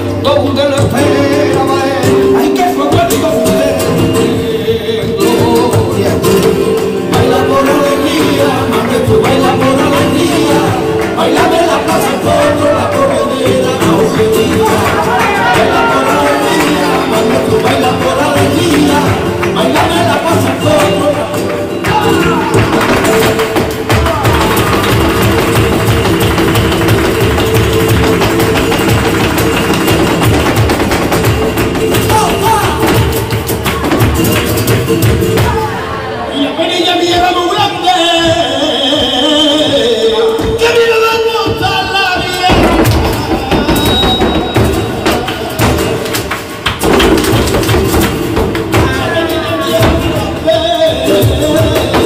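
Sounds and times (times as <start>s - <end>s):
person singing: 0.0s - 26.0s, 31.6s - 46.1s, 47.4s - 52.0s
guitar playing: 0.0s - 36.3s, 42.6s - 52.0s
footwork tapping on stage: 5.0s - 35.7s, 37.1s - 52.0s.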